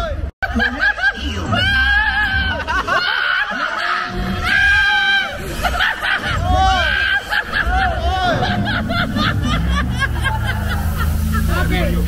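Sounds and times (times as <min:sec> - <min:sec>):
riders laughing and shrieking: 0:00.4 - 0:12.0
ride soundtrack music and effects: 0:04.1 - 0:12.0
low rumble: 0:05.4 - 0:12.0.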